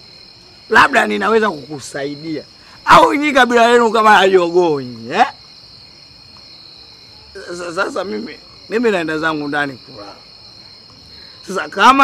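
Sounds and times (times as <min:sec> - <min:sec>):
crickets trilling: 0:00.0 - 0:12.0
man's voice: 0:00.7 - 0:05.4, 0:11.4 - 0:12.0.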